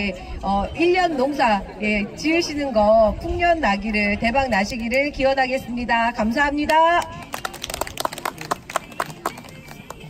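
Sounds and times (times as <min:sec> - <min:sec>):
audience clapping: 0:07.2 - 0:10.0.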